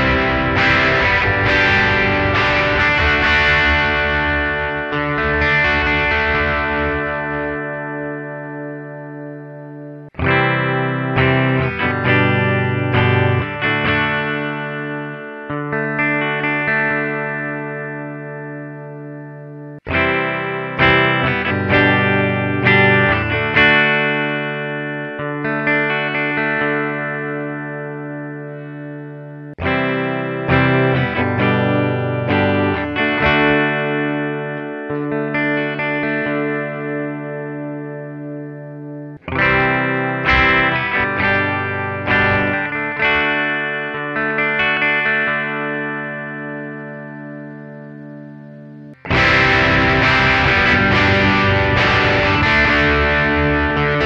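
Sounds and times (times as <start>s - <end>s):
clean electric guitar phrase: 0.0s - 54.0s.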